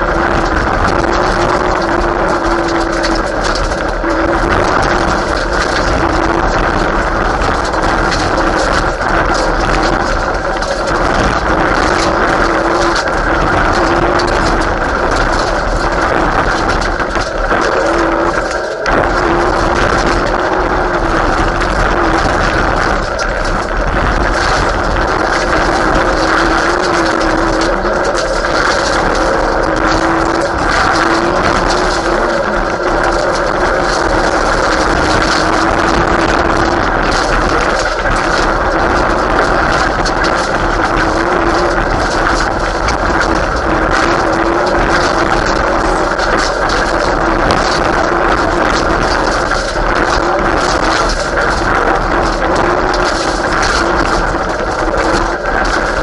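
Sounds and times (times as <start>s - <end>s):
gravel rattling against car: 0.0s - 56.0s.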